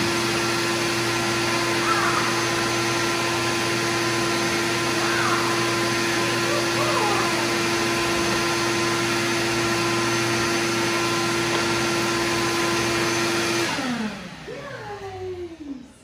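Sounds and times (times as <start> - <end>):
motor winding down: 0.0 - 15.9
vacuum cleaner running: 0.0 - 16.0.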